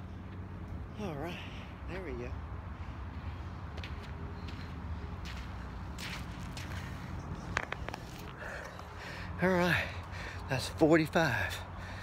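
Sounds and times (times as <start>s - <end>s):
footsteps on sandy dirt: 2.7s - 9.0s.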